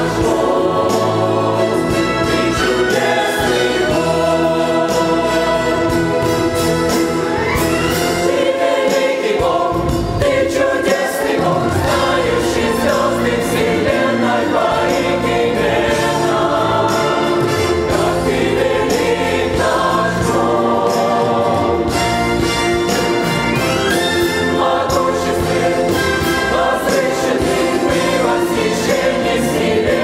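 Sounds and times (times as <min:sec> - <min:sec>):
mixed choir singing a hymn: 0:00.0 - 0:30.0.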